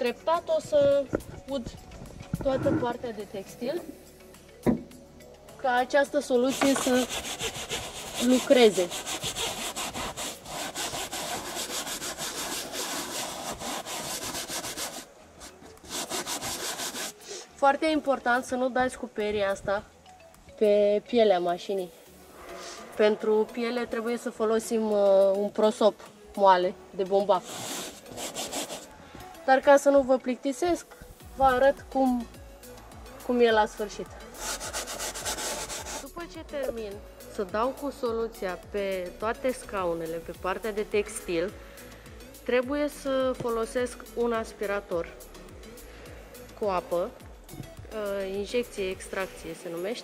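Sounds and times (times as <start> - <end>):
bristle brush scrubbing fabric: 6.4 - 17.5, 27.2 - 29.0, 34.3 - 36.1.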